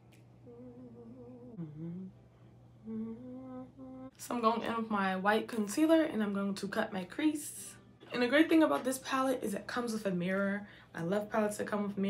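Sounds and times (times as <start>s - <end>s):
woman humming softly: 0.4s - 4.2s.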